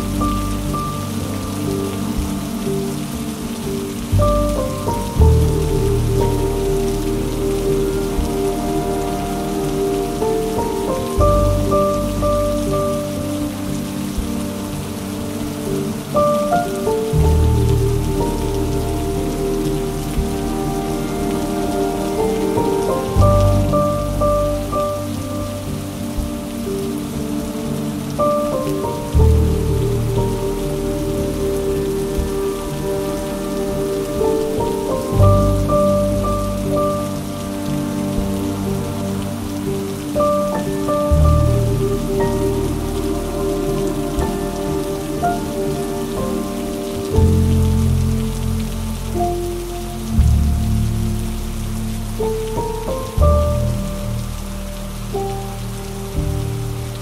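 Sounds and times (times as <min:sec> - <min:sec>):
soft instrumental music: 0:00.0 - 0:57.0
steady rain: 0:00.0 - 0:57.0.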